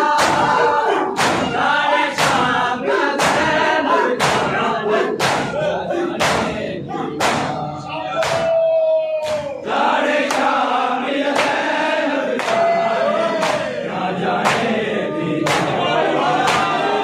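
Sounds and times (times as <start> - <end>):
men chanting in unison: 0.0 - 8.5, 9.2 - 17.0
hands slapping chests: 0.1 - 1.6, 2.2 - 6.6, 7.2 - 7.6, 8.2 - 8.6, 10.2 - 10.6, 11.3 - 11.7, 12.3 - 12.7, 13.4 - 13.8, 14.4 - 14.8, 15.4 - 15.8, 16.4 - 16.8.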